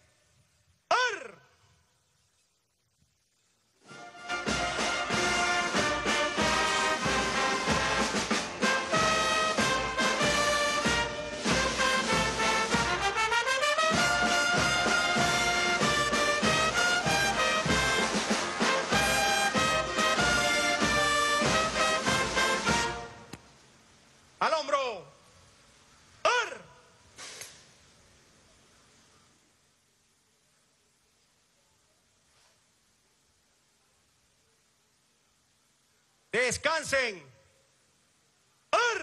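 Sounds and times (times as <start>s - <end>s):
military brass band playing: 3.8s - 23.4s.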